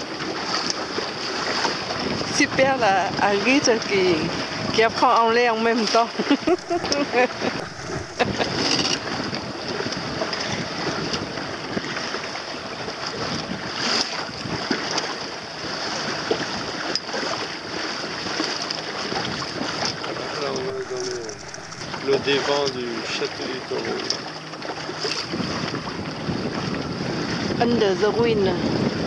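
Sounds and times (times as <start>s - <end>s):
water rushing past boat hull: 0.0s - 29.0s
wind buffeting microphone: 0.0s - 29.0s.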